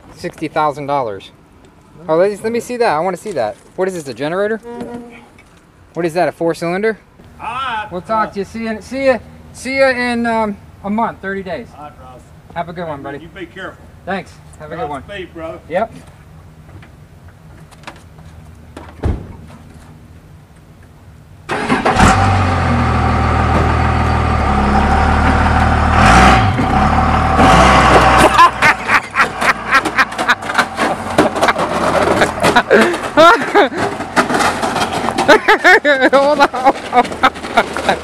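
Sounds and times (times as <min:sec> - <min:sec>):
voices: 0:00.0 - 0:16.2
truck engine starting and running: 0:16.5 - 0:38.0
crunching and scraping clatter: 0:25.2 - 0:38.0.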